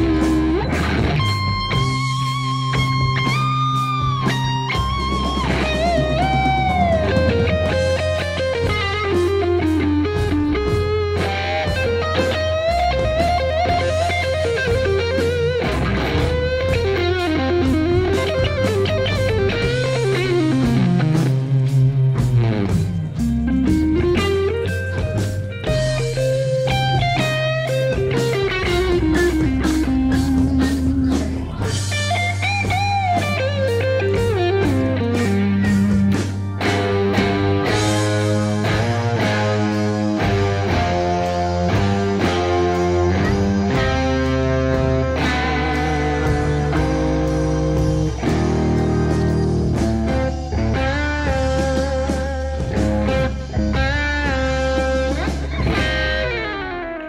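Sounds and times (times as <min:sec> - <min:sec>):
electric guitar lead with slides: 0:00.0 - 0:57.0
low bass notes: 0:00.0 - 0:57.0.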